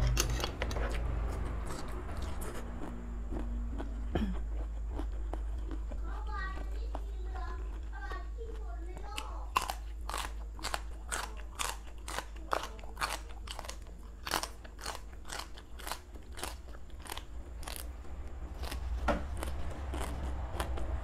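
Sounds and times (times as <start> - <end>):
crunchy stems being chewed: 0.0 - 21.0.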